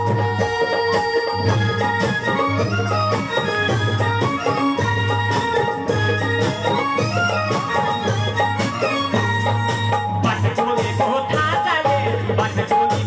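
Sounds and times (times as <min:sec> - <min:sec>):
sustained reedy melody: 0:00.0 - 0:10.4
dhol drum strokes: 0:00.0 - 0:13.0.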